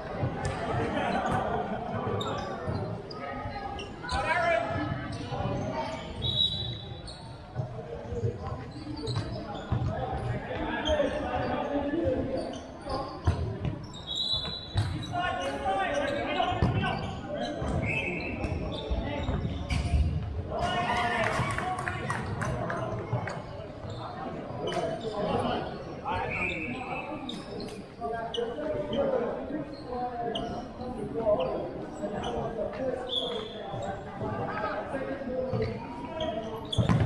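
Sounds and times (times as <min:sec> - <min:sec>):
distant player shouts and chatter: 0:00.2 - 0:37.0
shoe squeaks on wooden floor: 0:08.2 - 0:09.9, 0:12.4 - 0:20.2, 0:35.5 - 0:37.0
ball kicks and bounces: 0:36.8 - 0:37.0.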